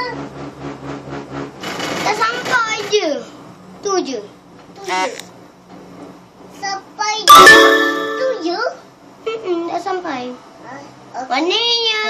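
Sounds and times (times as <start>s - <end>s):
cable car rhythmic mechanical rumble: 0.0s - 4.8s.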